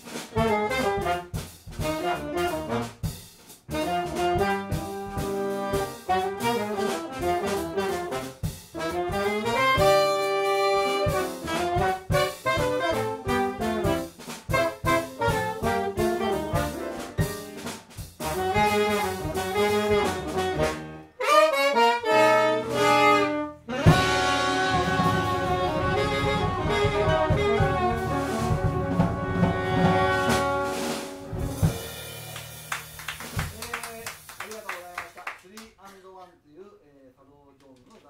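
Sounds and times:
alto saxophone: 0.0s - 32.2s
trombone: 0.0s - 32.3s
piano: 0.0s - 34.3s
drums: 0.0s - 36.1s
double bass: 0.3s - 21.1s, 22.2s - 32.4s.

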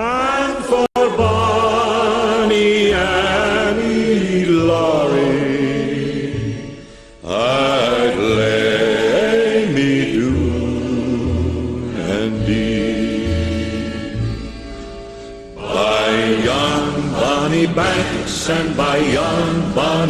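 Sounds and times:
sing-along chorus with orchestra: 0.0s - 14.6s, 15.5s - 20.0s.

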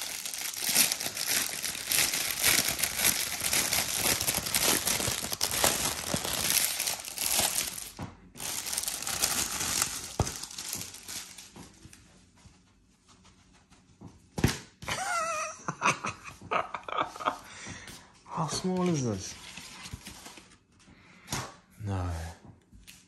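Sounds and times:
plastic bag crinkling: 0.0s - 11.6s.

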